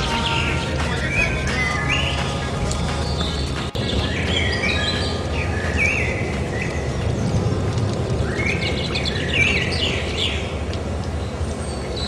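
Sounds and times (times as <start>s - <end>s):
low rumble: 0.0s - 11.9s
birds chirping and calling: 0.0s - 12.0s.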